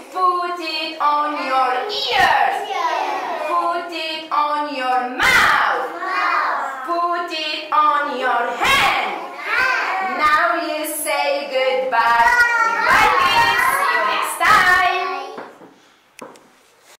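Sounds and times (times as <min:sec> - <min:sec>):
young children singing: 0:00.5 - 0:15.4
faint tap: 0:15.4 - 0:16.5.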